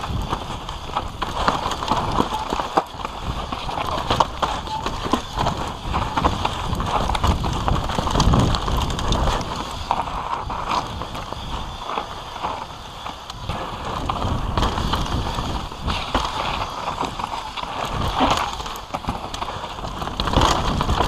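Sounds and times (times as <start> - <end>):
bike knocks and rattles: 0.0 - 21.0
bike tyres rolling over dirt: 0.0 - 21.0
wind on microphone: 0.0 - 21.0.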